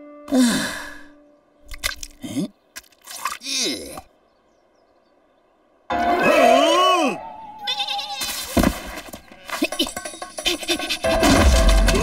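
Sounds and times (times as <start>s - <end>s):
cartoon sheep bleating: 6.2s - 8.4s.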